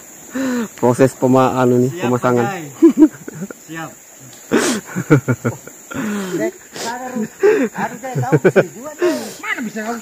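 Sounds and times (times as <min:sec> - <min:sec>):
high-pitched insect drone: 0:00.0 - 0:10.0
men calling and talking: 0:00.0 - 0:10.0.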